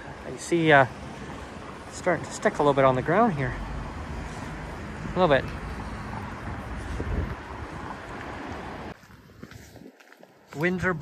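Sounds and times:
gusty wind buffeting microphone: 3.7 - 10.0.

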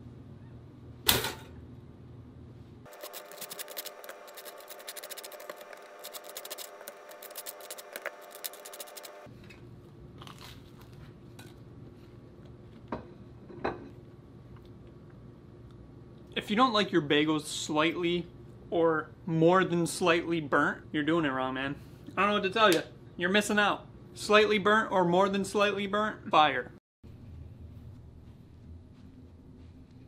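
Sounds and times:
knife scraping toast: 2.9 - 9.2.

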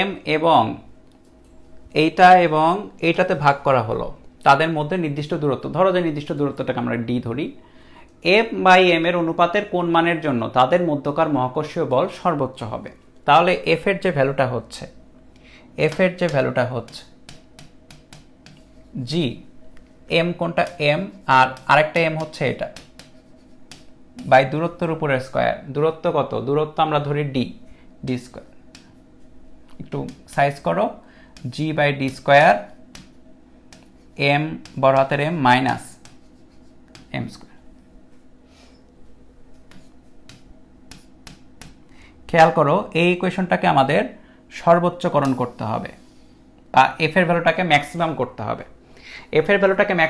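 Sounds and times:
stylus tapping on touchscreen: 15.8 - 18.7, 20.6 - 24.4, 29.9 - 30.4, 31.4 - 37.2, 39.5 - 41.9
pen tip tapping on board: 15.9 - 18.6, 21.6 - 23.9, 39.7 - 41.8.

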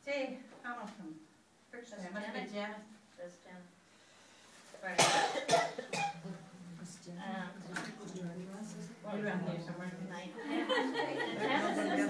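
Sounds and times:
person coughing: 5.0 - 6.2.

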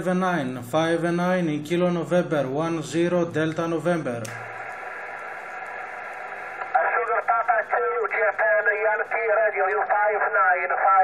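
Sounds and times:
radio receiver hiss: 4.2 - 11.0
voice through radio speaker: 6.7 - 11.0.

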